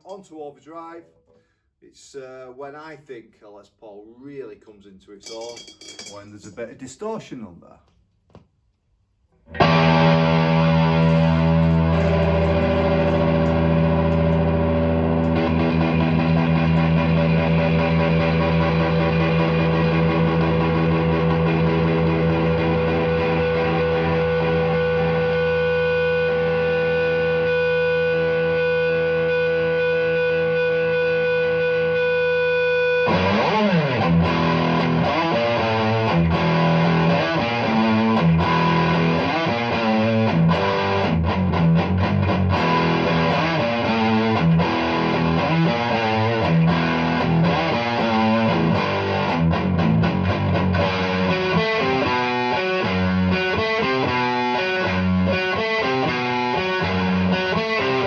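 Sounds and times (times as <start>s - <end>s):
distorted electric guitar: 9.4s - 58.0s.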